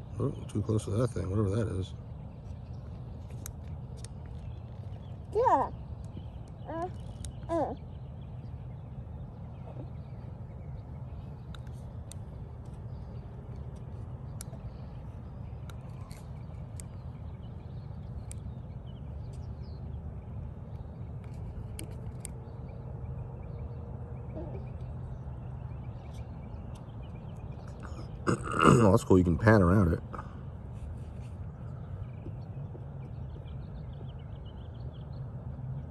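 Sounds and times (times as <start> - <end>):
faint steady hum: 0.0 - 35.9
low outdoor rumble: 0.0 - 35.9.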